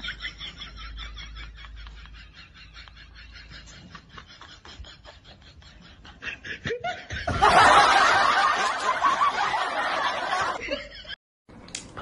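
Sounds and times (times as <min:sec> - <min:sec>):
people laughing loudly: 0:00.0 - 0:11.2.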